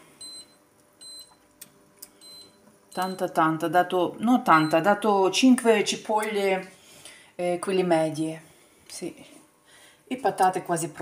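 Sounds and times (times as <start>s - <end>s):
short high beeps of hob controls: 0.2s - 1.4s, 2.2s - 3.2s.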